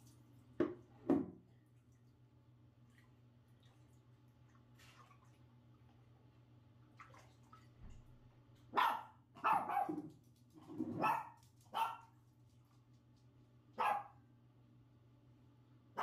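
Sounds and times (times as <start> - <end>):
dog barking: 8.7 - 10.1, 10.9 - 12.1, 13.8 - 14.2.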